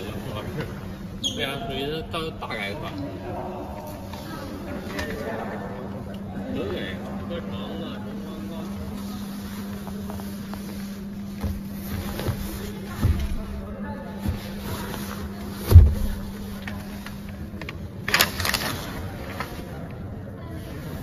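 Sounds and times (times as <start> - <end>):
steady low hum: 0.0 - 21.0
hand thumping car seat: 15.6 - 16.5.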